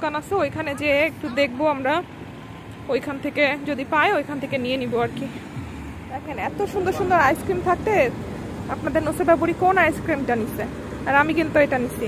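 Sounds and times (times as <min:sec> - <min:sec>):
low traffic hum: 0:00.0 - 0:12.0.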